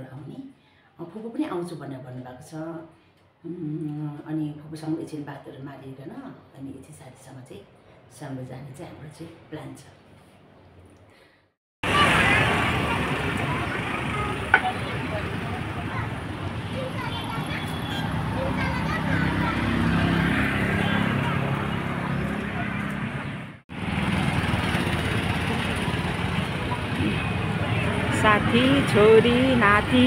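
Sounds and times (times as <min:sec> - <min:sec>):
motorbikes and cars passing: 0:11.8 - 0:30.0
indistinct voices: 0:26.4 - 0:30.0.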